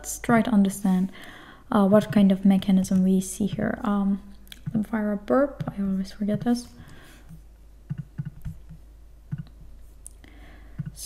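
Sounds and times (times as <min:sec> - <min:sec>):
keyboard and mouse clicks: 0:07.9 - 0:09.6.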